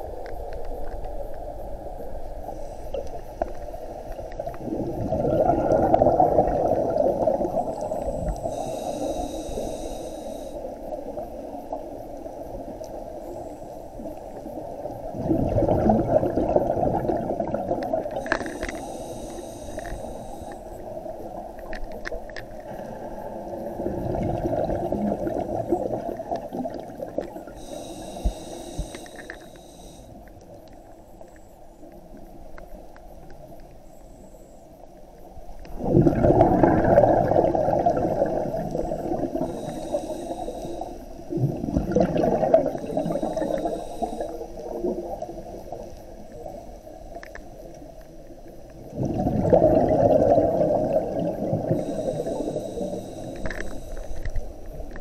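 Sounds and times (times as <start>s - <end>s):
hissing inhale through regulator: 2.3s - 31.0s, 35.8s - 47.8s, 48.5s - 55.0s
bubbling exhale underwater: 4.2s - 10.5s, 15.0s - 21.0s, 22.7s - 30.0s, 35.7s - 45.8s, 48.8s - 54.3s.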